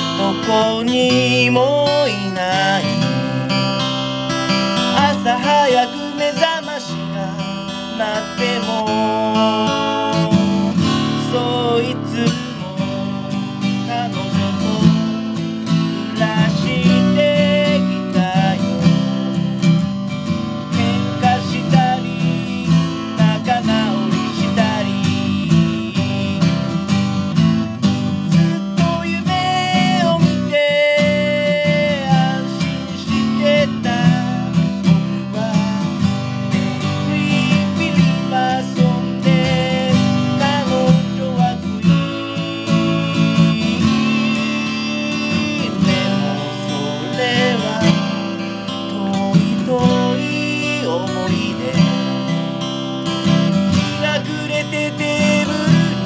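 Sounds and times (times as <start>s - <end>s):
person singing: 0.0s - 27.0s, 27.6s - 52.6s, 53.4s - 56.0s
acoustic guitar strummed chords: 0.0s - 56.0s.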